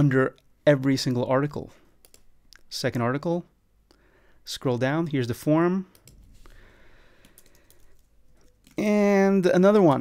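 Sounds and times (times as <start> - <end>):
faint keyboard keystrokes: 7.2 - 8.8.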